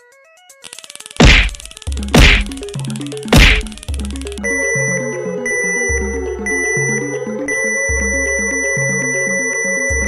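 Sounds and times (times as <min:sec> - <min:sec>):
electronic music track: 0:00.0 - 0:10.0
loud whacks: 0:01.2 - 0:02.6, 0:03.3 - 0:03.8.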